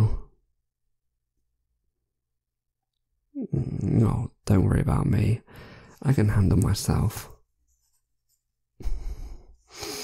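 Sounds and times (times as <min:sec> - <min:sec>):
man speaking: 0:03.6 - 0:07.4.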